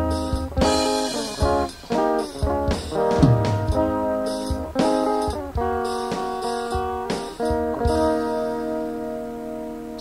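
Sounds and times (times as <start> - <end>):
held rock guitar chord: 2.8 - 5.2.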